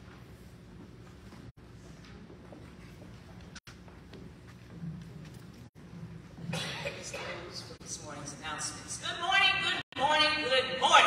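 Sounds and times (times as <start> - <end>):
steady low hum: 0.0 - 10.8
person coughing: 6.4 - 7.6.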